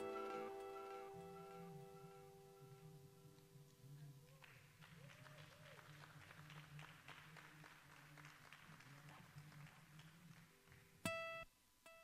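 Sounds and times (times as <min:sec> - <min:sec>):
music: 0:00.0 - 0:04.9, 0:06.2 - 0:12.0.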